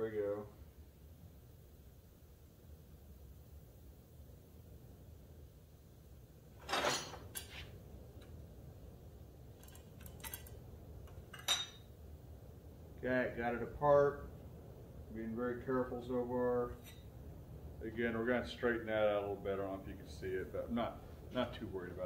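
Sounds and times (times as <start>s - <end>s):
low steady hum: 0.0s - 22.0s
metal parts clanking on workbench: 6.6s - 7.7s, 9.6s - 10.5s, 11.1s - 11.8s
sharp ringing metal clink: 11.4s - 11.8s.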